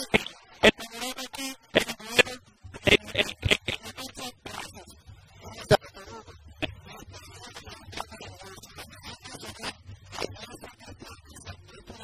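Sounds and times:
microphone popping: 1.7 - 4.9.

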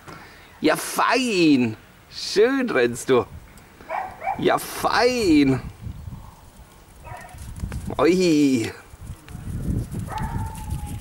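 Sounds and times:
dog paws running through snow: 9.4 - 11.0.

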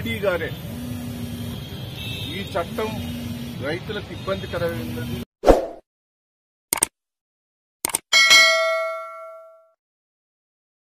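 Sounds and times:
notification bell ringing: 8.2 - 9.8.

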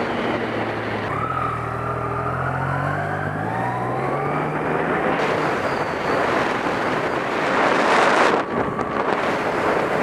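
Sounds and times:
motorcycle engine accelerating: 0.0 - 10.0
wind rushing on microphone: 4.8 - 10.0.

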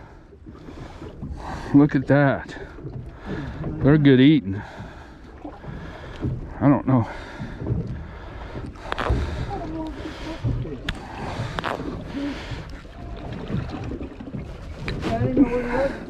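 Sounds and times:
water lapping against hull: 0.0 - 16.0.

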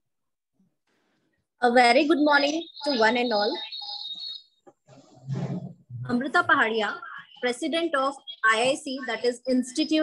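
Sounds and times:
woman speaking over video call: 1.6 - 3.9, 5.3 - 10.0.

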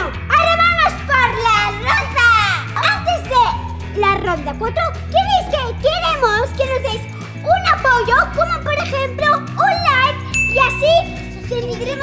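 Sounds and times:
background music: 0.0 - 12.0
girls talking excitedly: 0.0 - 12.0.

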